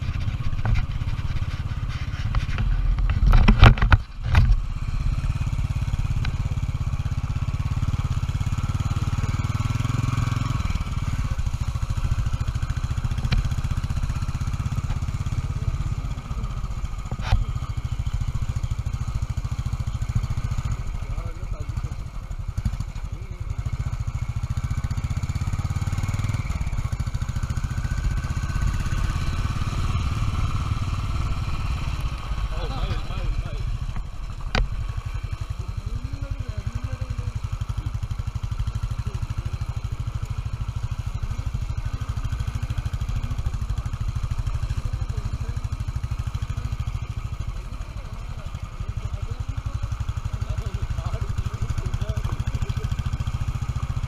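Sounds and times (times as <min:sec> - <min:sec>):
motorcycle engine running: 0:00.0 - 0:54.0.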